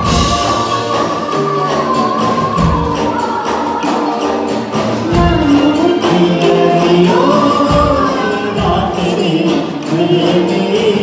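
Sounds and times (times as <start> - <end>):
fast steady percussion beat: 0.0 - 11.0
singer holding long notes: 0.0 - 11.0.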